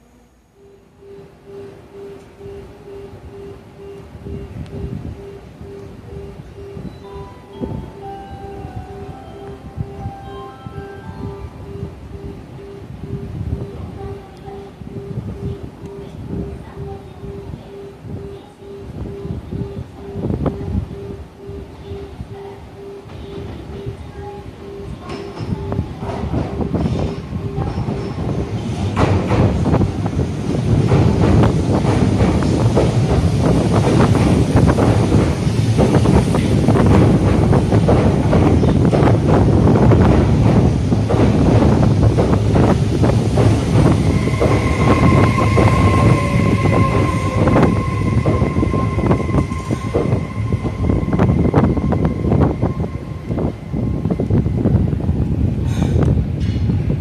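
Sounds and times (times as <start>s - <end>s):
steady high whine: 0.0s - 25.9s, 32.7s - 57.0s
train wheels clicking over rail joints: 24.8s - 57.0s.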